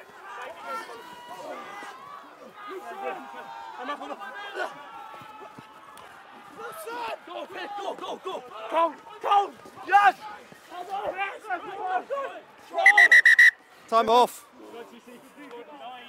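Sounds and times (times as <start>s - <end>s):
rugby players shouting: 0.0s - 16.0s.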